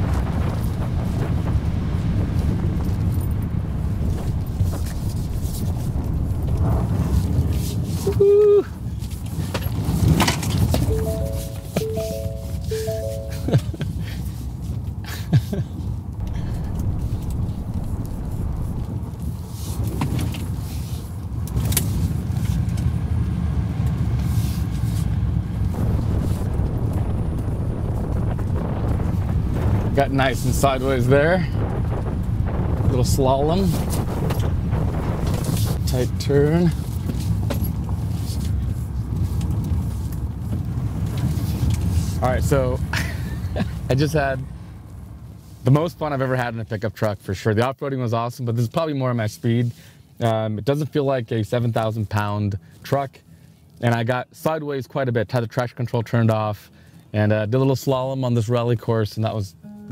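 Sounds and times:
tyres rumbling on loose gravel: 0:00.0 - 0:10.9, 0:13.9 - 0:47.6
short electronic chime: 0:10.9 - 0:13.7, 0:59.6 - 0:59.9.

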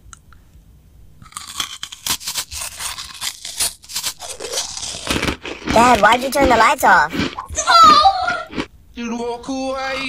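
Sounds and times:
teeth crunching brittle treat: 0:01.2 - 0:08.7.

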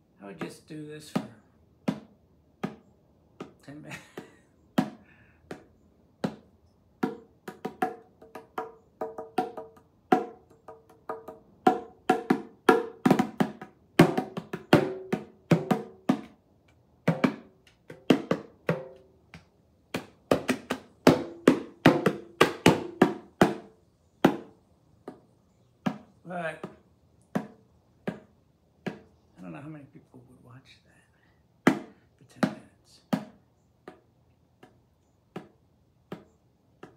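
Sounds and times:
bongos played by hand: 0:00.4 - 0:03.6, 0:04.2 - 0:16.4, 0:17.0 - 0:25.2, 0:25.8 - 0:29.1, 0:31.6 - 0:36.9.

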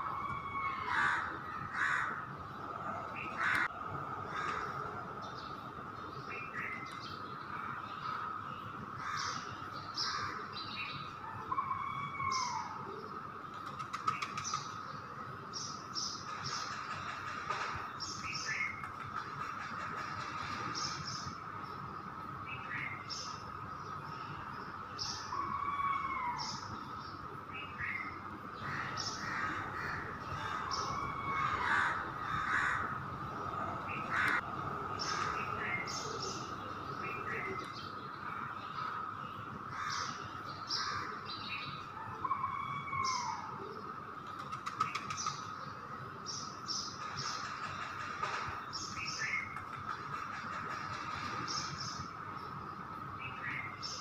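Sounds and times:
birds chirping: 0:00.0 - 0:54.0.

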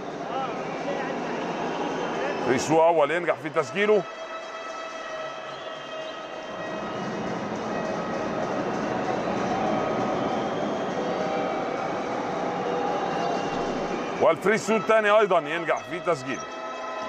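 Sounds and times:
arena crowd din: 0:00.0 - 0:17.0.

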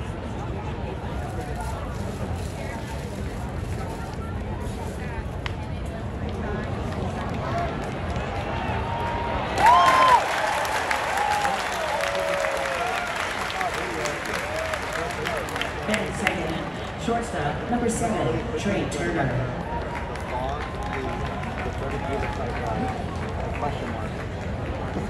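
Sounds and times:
stadium crowd chatter: 0:00.0 - 0:25.0
crowd cheering and clapping: 0:07.0 - 0:17.0, 0:19.5 - 0:25.0.

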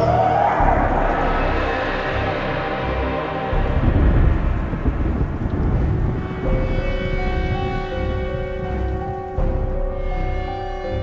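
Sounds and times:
soundtrack music with held chords: 0:00.0 - 0:11.0
deep rumbling boom: 0:00.6 - 0:08.6.

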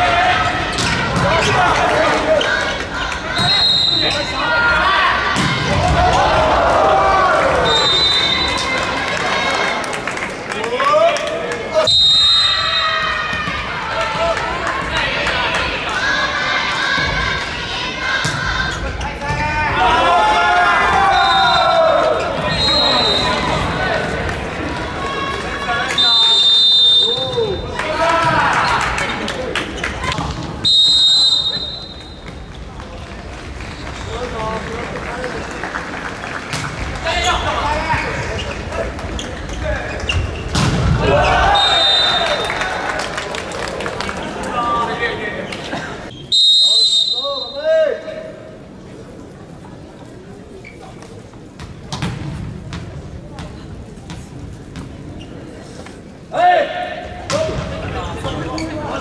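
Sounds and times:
players and crowd shouting: 0:00.0 - 0:10.0, 0:10.6 - 0:30.4, 0:40.8 - 0:42.9, 0:56.3 - 0:59.0
referee whistle blasts: 0:03.4 - 0:04.3, 0:07.6 - 0:08.6, 0:11.8 - 0:13.0, 0:22.5 - 0:23.4, 0:25.9 - 0:27.5, 0:30.6 - 0:32.2, 0:41.5 - 0:42.4, 0:46.2 - 0:47.7.

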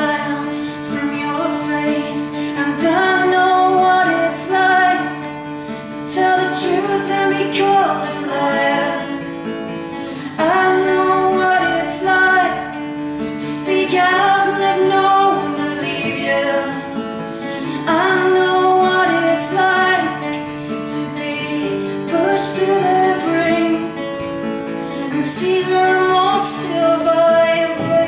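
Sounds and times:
strummed acoustic guitar: 0:00.0 - 0:28.0
woman singing a folk song: 0:00.0 - 0:28.0.

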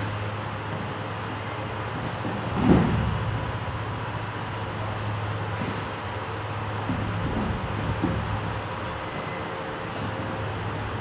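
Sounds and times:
steady low hum: 0:00.0 - 0:11.0
body thudding on mats: 0:02.0 - 0:03.4.

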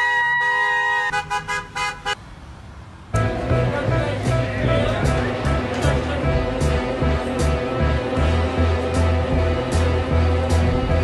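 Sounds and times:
van horn honking: 0:00.0 - 0:02.2, 0:03.2 - 0:11.0.

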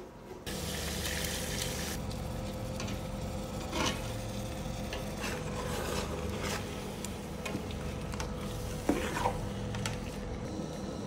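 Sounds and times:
steady sizzle: 0:00.5 - 0:07.8.

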